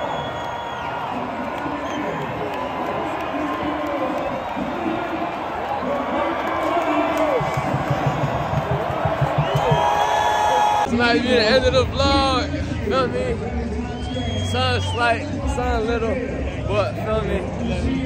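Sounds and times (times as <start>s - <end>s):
stadium crowd roaring: 0.0s - 18.0s.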